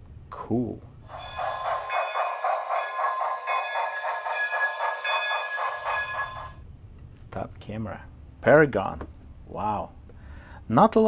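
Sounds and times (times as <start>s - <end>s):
steady tones: 1.1s - 6.6s
steam locomotive chuffs: 1.1s - 6.6s.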